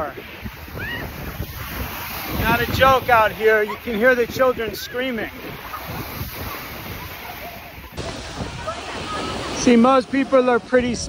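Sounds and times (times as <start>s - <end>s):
surf washing in: 0.0s - 11.0s.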